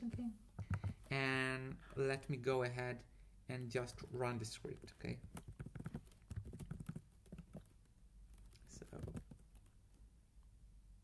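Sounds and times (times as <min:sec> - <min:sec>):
typing on computer keyboard: 0:05.1 - 0:09.8.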